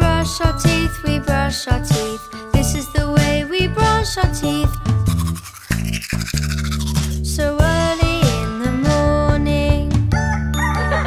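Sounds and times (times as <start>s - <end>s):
children's sing-along song: 0.0s - 4.9s, 7.4s - 10.0s
cartoon toothbrush scrubbing: 4.5s - 8.4s.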